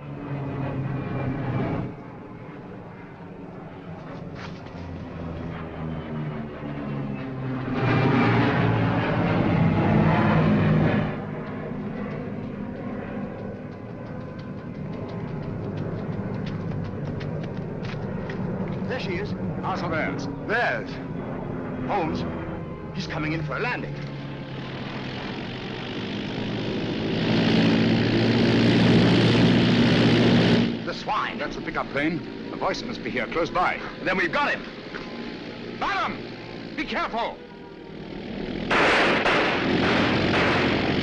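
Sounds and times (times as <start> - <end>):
propeller aircraft engine droning: 0.0 - 41.0.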